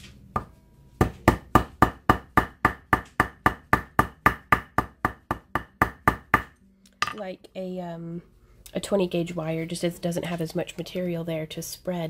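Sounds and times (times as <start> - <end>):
hammer striking wire on stone: 0.4 - 7.3.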